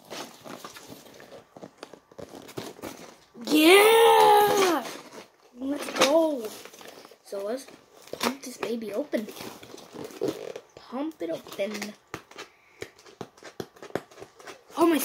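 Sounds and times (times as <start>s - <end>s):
cardboard box crinkling and tapping: 0.0s - 3.4s, 4.2s - 15.0s
boy shouting excitedly: 3.4s - 5.0s.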